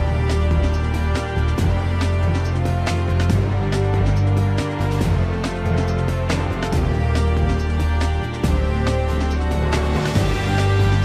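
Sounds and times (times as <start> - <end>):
news theme music: 0.0 - 11.0.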